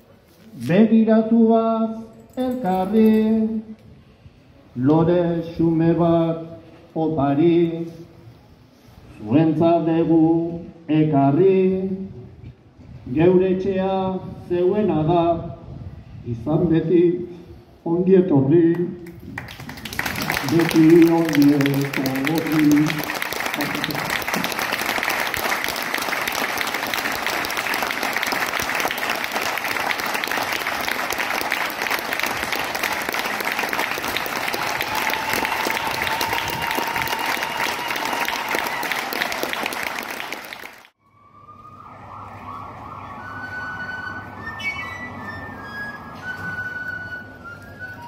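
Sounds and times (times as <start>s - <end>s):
crowd applauding: 19.4s - 40.9s
whistle or cheer tone: 42.6s - 48.0s.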